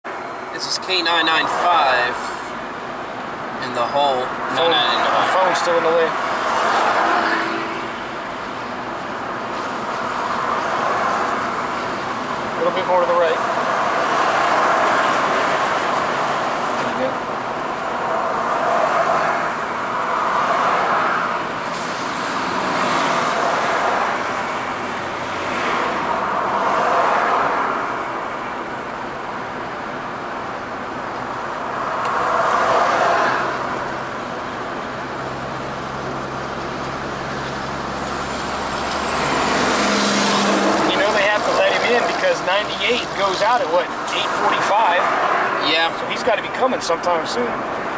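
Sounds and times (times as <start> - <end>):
car road noise: 0.0 - 47.9
vehicles passing by: 0.0 - 47.9.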